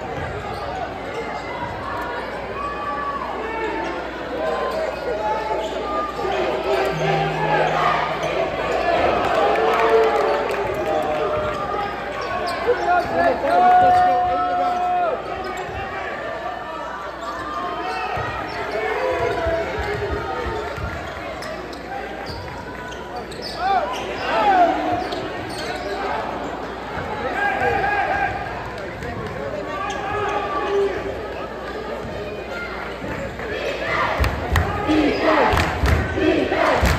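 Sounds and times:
crowd voices in a hall: 0.0 - 36.9
spectators talking: 0.0 - 36.9.

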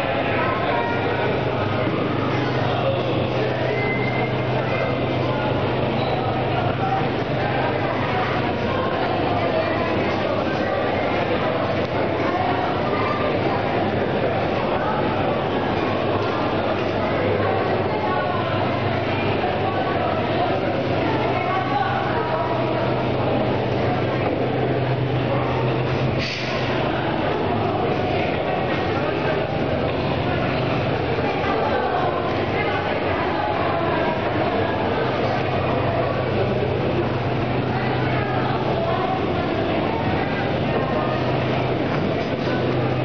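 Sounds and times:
motion simulator mechanical whir: 0.0 - 43.0.

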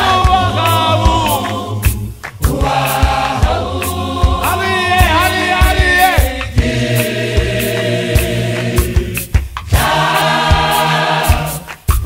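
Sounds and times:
gospel choir singing in harmony: 0.0 - 12.0
steady beat and bass line: 0.0 - 12.0.

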